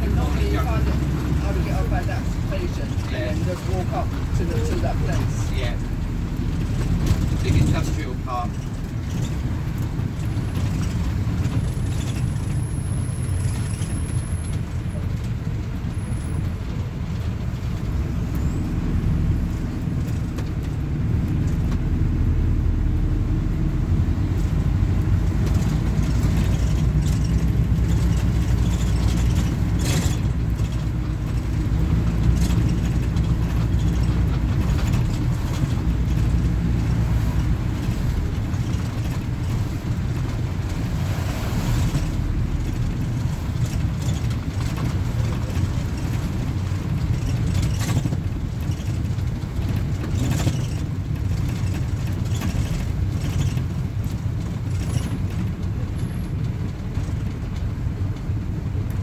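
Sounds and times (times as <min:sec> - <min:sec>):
diesel engine droning: 0:00.0 - 0:56.7
tyre noise on wet road: 0:00.0 - 0:59.0.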